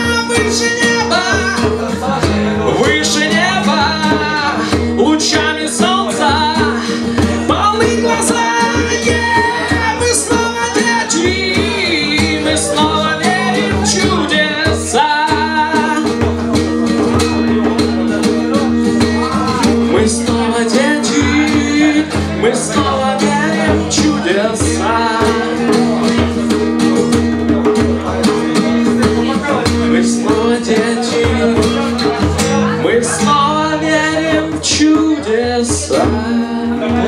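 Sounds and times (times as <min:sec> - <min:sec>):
acoustic guitar strumming: 0:00.0 - 0:37.0
man singing: 0:00.0 - 0:37.0.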